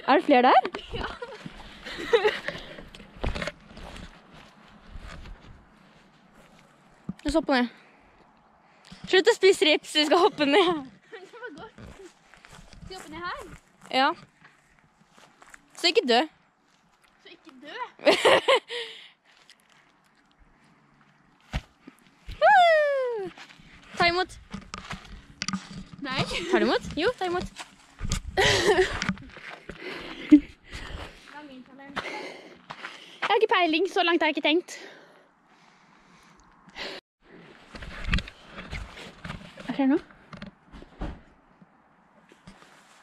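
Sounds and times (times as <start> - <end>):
footsteps rustling through grass: 14.6 - 15.8
girl making wordless cries: 22.4 - 23.3.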